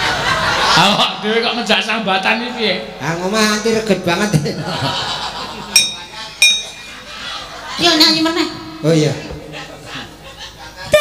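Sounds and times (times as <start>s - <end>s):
sharp metallic clink: 5.8s - 6.9s.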